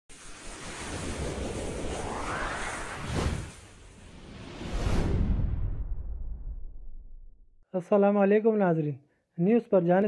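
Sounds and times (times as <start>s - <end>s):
rushing wind-like whoosh: 0.1s - 7.2s.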